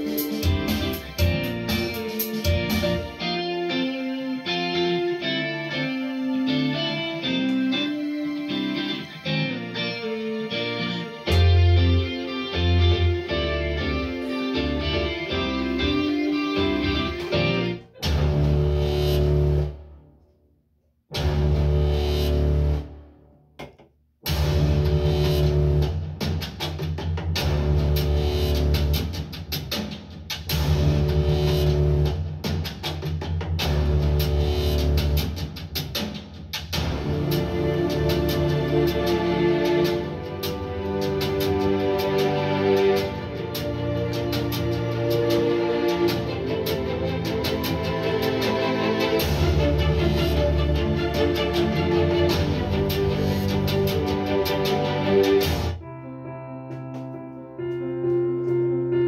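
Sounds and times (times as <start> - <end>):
bass-heavy track with steady beat: 0.0 - 3.9, 8.7 - 19.8, 21.1 - 55.9
guitar-led instrumental: 0.0 - 19.7, 36.8 - 59.0.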